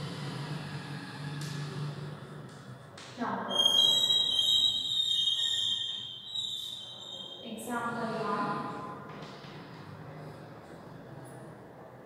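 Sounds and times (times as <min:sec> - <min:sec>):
chalk squealing on blackboard: 0:03.5 - 0:07.4.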